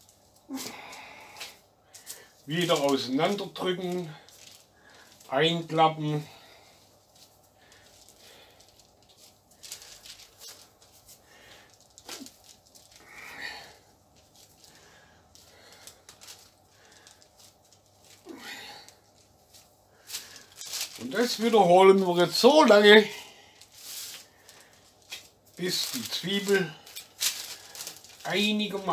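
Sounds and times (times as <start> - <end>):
squishing and rustling of dough: 0.0 - 28.9.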